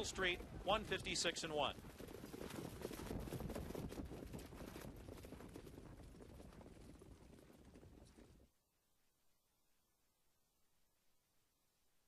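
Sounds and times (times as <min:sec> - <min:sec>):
horse hoofbeats trotting: 0:00.0 - 0:08.5.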